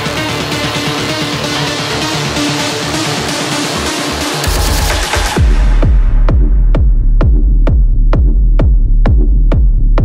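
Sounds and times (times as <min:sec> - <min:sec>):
deep bass drone: 0:00.0 - 0:10.0
techno kick drum: 0:01.0 - 0:10.0.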